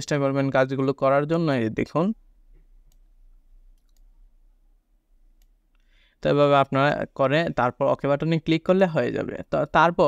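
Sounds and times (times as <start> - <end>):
faint computer mouse clicks: 3.7 - 4.1.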